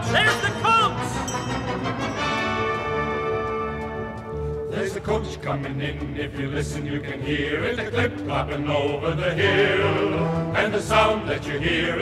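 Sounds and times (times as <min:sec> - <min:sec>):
orchestra playing: 0:00.0 - 0:05.0.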